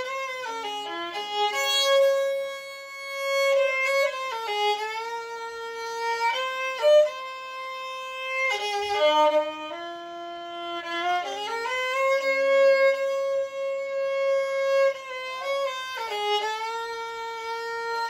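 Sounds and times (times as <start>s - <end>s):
bowed violin melody: 0.0s - 18.0s.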